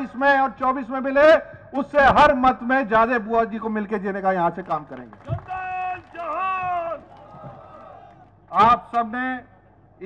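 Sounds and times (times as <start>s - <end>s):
man speaking over public address: 0.0s - 7.0s, 8.5s - 10.0s.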